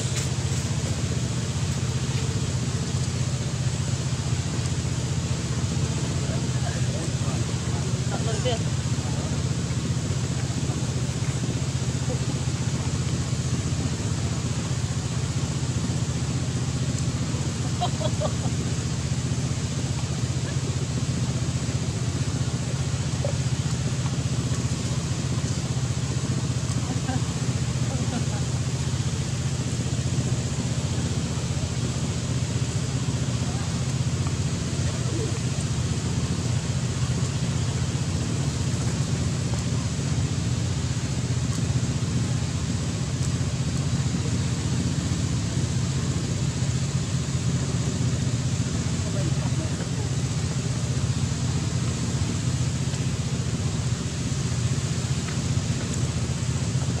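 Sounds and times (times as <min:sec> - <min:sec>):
low mechanical hum: 0:00.0 - 0:57.0.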